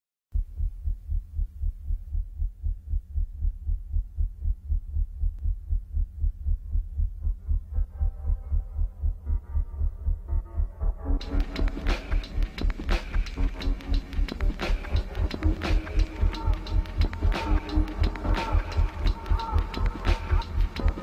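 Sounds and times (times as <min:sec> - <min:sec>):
heartbeat thumping: 0:00.3 - 0:21.0.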